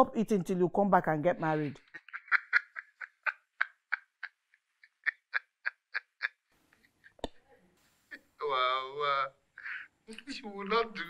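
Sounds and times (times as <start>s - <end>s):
person laughing over a phone: 1.8s - 7.2s.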